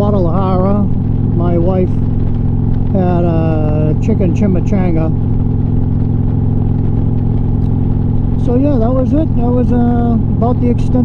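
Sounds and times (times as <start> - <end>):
motorcycle engine cruising: 0.0 - 11.0.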